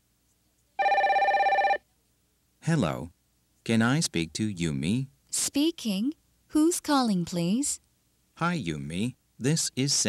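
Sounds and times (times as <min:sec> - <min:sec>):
telephone ringing: 0:00.8 - 0:01.8.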